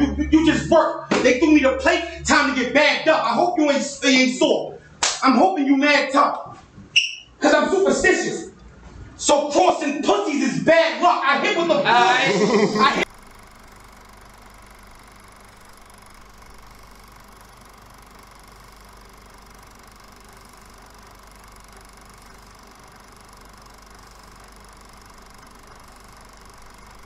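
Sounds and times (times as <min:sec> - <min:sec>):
low hum: 0:00.0 - 0:02.8, 0:13.0 - 0:27.0.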